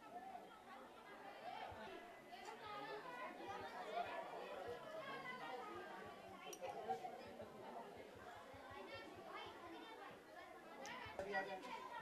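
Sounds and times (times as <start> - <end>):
background chatter of many people: 0.0 - 12.0.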